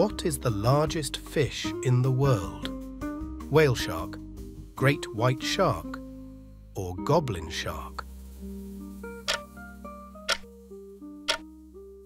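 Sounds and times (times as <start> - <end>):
quiet background music: 0.0 - 12.0
clock ticking: 9.3 - 9.5, 10.3 - 10.5.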